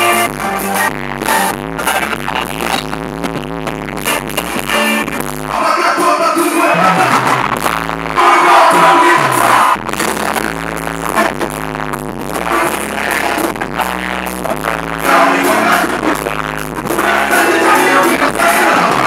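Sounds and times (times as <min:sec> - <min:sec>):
live band music: 0:00.0 - 0:01.9
repeating bass line: 0:00.0 - 0:19.0
people singing into microphones: 0:05.5 - 0:07.6, 0:08.2 - 0:10.2, 0:12.4 - 0:19.0.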